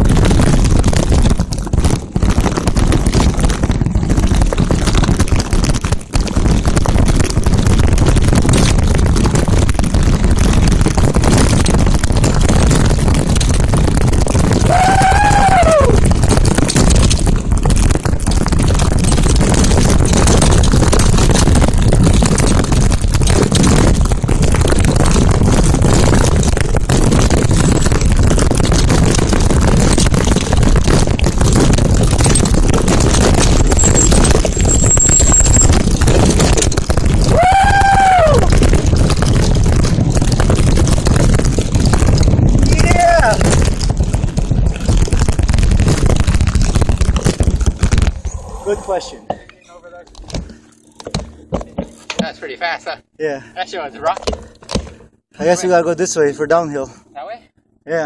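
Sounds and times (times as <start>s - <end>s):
mountain bike rattling on rocks: 0.0s - 48.4s, 49.6s - 52.8s, 53.8s - 56.6s
wind on microphone: 0.0s - 49.3s.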